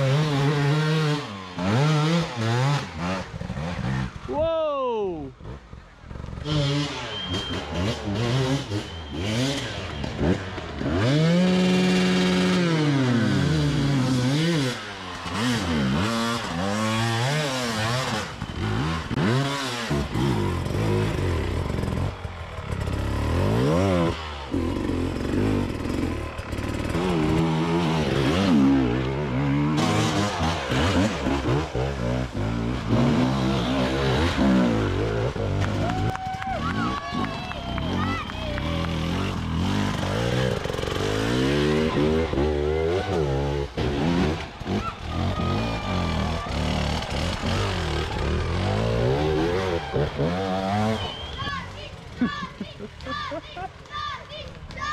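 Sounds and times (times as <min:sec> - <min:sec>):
dirt bike engines revving: 0:00.0 - 0:54.9.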